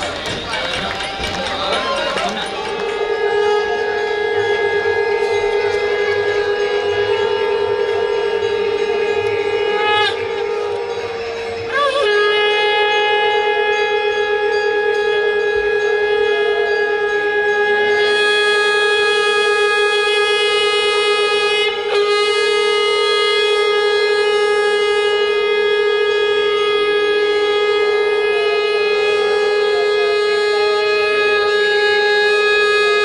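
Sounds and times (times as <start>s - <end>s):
conch shell blown: 0.0s - 33.0s.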